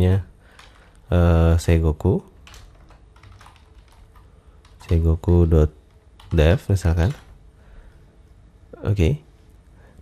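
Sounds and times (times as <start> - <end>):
computer keyboard key clicks: 2.4 - 5.0.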